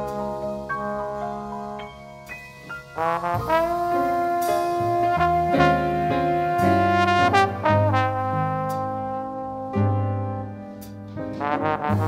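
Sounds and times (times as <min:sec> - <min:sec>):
jazz horns playing chords: 0:00.0 - 0:12.0.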